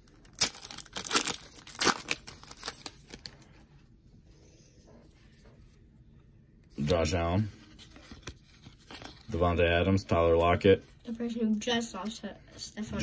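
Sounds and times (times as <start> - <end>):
foil wrapper tearing: 0.2 - 3.3.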